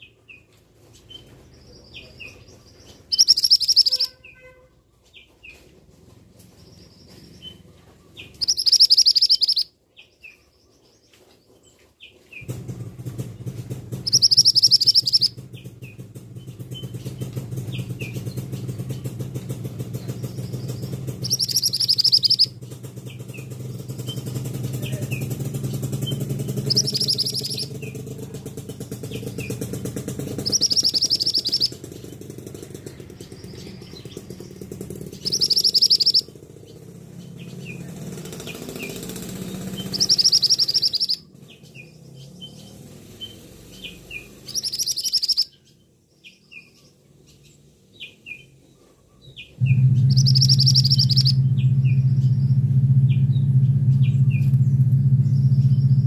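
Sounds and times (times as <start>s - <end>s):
shrill high-pitched bird calls: 1.9s - 5.6s, 6.8s - 10.4s, 13.1s - 28.0s, 29.0s - 45.8s, 49.2s - 53.3s
short bird chirps: 3.1s - 4.5s, 8.3s - 9.7s, 14.0s - 15.3s, 20.3s - 22.5s, 26.7s - 27.7s, 30.4s - 31.8s, 35.2s - 36.3s, 39.8s - 41.2s, 43.2s - 45.5s, 49.6s - 52.4s
low steady hum: 49.6s - 56.0s.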